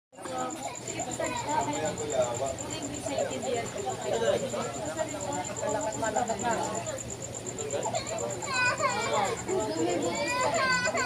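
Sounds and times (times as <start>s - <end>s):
children chattering and calling: 0.2s - 11.0s.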